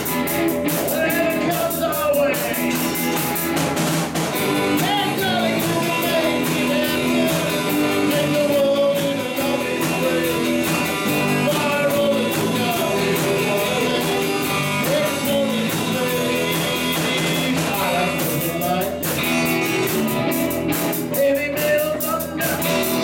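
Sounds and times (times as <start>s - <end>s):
man singing lead: 0.0s - 3.6s, 4.3s - 23.0s
live rock and roll band: 0.0s - 23.0s.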